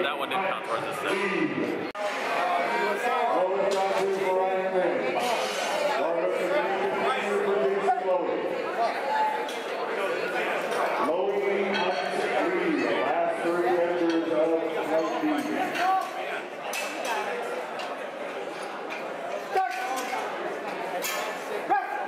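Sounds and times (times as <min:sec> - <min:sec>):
chatter of people talking: 0:00.0 - 0:22.0.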